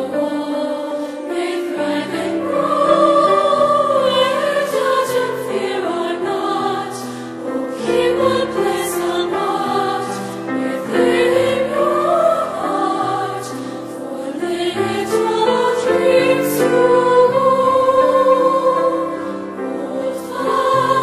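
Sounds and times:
girls choir singing: 0.0 - 21.0.

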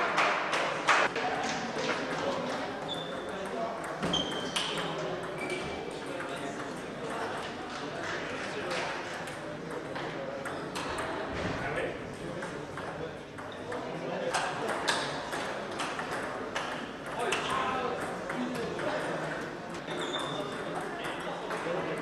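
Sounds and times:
voices in a hall: 0.0 - 22.0.

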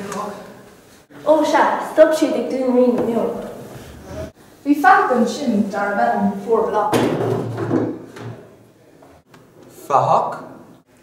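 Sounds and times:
chair scraping on floor: 2.9 - 4.4.

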